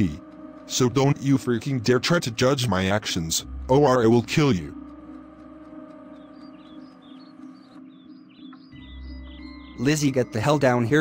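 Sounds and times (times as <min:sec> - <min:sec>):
sustained background music tones: 0:00.0 - 0:11.0
high bird chirps: 0:06.0 - 0:11.0.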